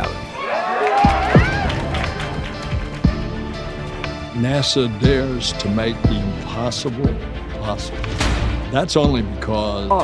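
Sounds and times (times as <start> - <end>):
background music: 0.0 - 10.0
group of people cheering: 0.2 - 2.9.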